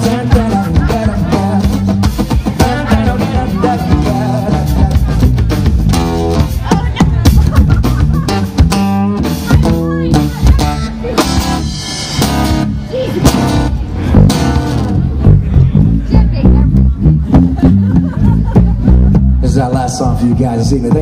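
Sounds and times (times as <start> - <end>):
acoustic guitar: 0.0 - 21.0
bass guitar: 0.0 - 21.0
drum kit: 0.0 - 21.0.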